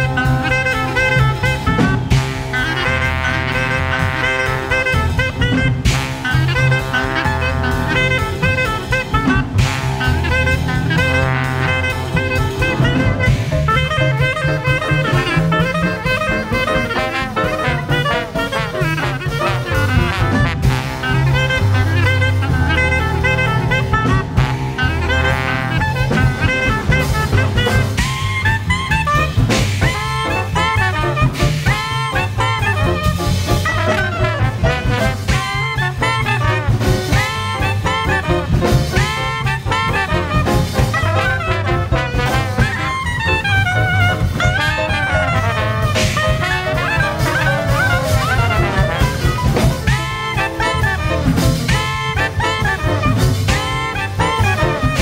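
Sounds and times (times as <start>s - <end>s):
clarinet playing fast runs: 0.0s - 55.0s
drum kit: 0.0s - 55.0s
piano: 0.0s - 55.0s
walking upright bass: 0.0s - 55.0s.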